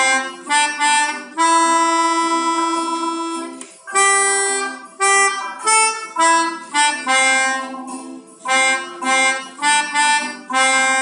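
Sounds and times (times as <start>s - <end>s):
melodica melody: 0.0s - 11.0s.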